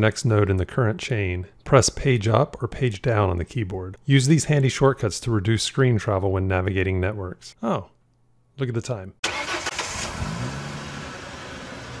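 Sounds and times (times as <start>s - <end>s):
car engine revving: 9.3s - 12.0s.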